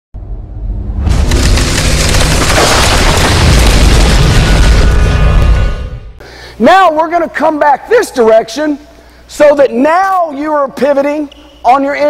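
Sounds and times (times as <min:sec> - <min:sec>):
deep boom and crashing rush: 0:00.2 - 0:06.2.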